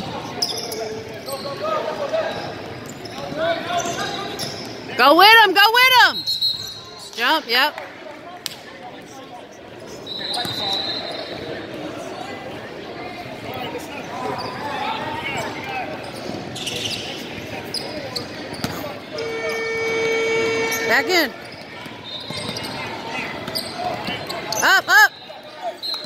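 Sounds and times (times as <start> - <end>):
players and spectators voices: 0.0 - 26.0
buzzer horn: 19.2 - 21.4.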